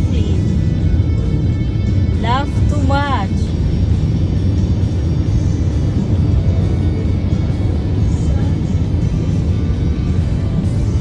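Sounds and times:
car cabin road noise: 0.0s - 11.0s.

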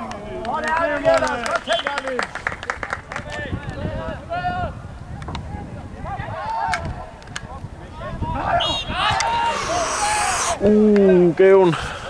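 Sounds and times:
players shouting: 8.3s - 10.7s
drawn-out yell: 8.4s - 10.6s.

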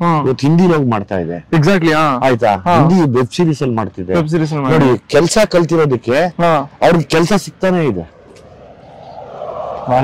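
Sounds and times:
distant engine drone: 8.0s - 10.0s.

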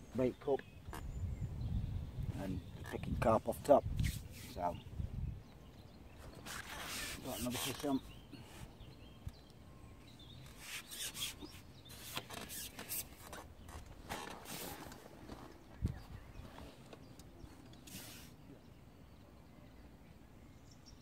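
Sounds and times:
fishing pole rubbing and rustling: 3.9s - 4.8s, 6.2s - 8.7s, 10.4s - 15.6s, 16.4s - 18.4s.

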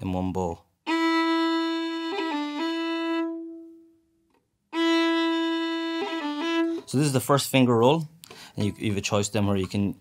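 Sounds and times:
solo fiddle playing: 0.8s - 4.0s, 4.7s - 7.4s.

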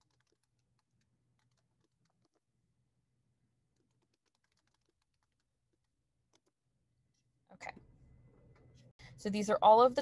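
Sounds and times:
typing on a computer keyboard: 0.0s - 2.4s, 3.8s - 5.5s.

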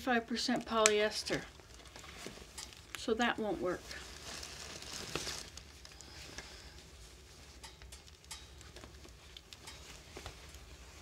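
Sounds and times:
wood fire crackling: 0.0s - 11.0s
shirt rustling: 0.7s - 11.0s.

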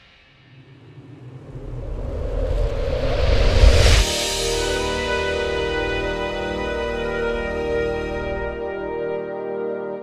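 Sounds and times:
deep rumbling whoosh riser: 0.1s - 8.6s.

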